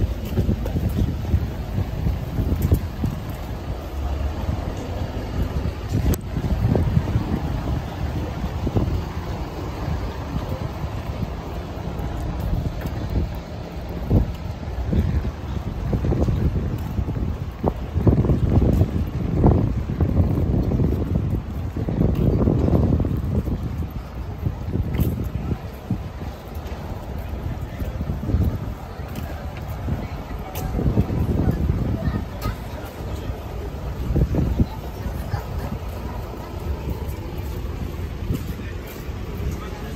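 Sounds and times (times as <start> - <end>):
car traffic on wet road: 0.0 - 39.9
wind buffeting microphone: 0.0 - 39.9.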